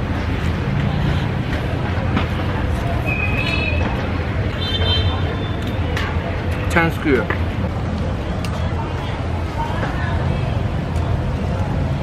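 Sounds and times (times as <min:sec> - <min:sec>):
traffic engine rumble: 0:00.0 - 0:12.0.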